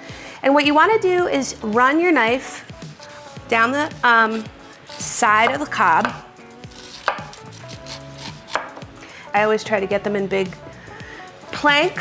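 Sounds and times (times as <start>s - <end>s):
knife scraping corn cob: 3.0s - 5.6s, 6.7s - 8.7s.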